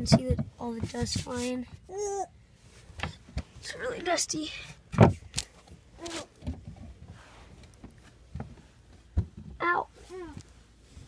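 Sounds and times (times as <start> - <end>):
knocks and scrapes of crawling: 0.0 - 11.0.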